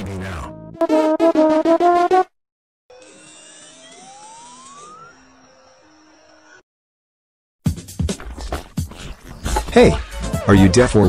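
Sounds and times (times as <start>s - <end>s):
machine whine rising in pitch: 2.9s - 6.6s.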